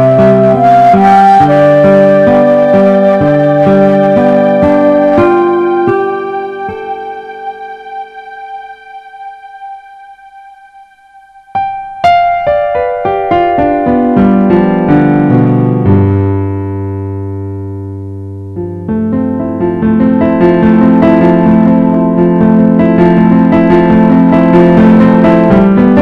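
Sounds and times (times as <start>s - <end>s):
piano music: 0.0s - 26.0s.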